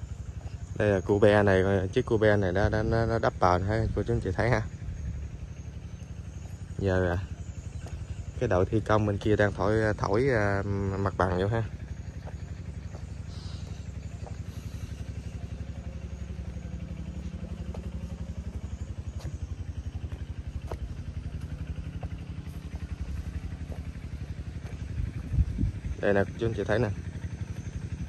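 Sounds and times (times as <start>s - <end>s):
diesel engine running: 0.0s - 28.0s.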